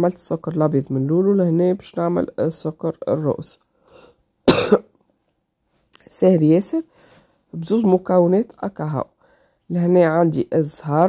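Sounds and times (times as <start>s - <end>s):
woman coughing: 4.4s - 4.9s.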